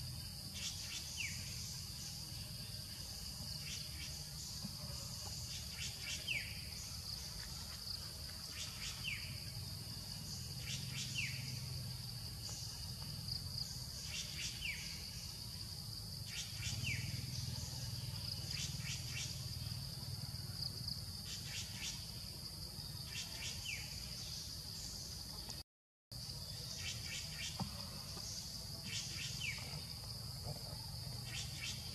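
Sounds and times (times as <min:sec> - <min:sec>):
high insect drone: 0:00.0 - 0:25.6, 0:26.2 - 0:31.9.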